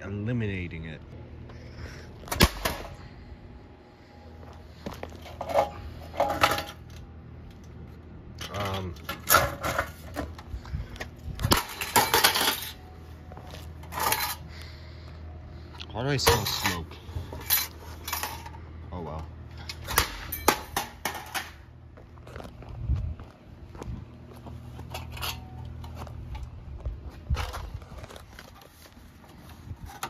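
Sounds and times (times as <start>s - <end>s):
plastic and metal parts clattering: 5.2s - 7.0s, 8.4s - 10.5s, 11.5s - 12.8s.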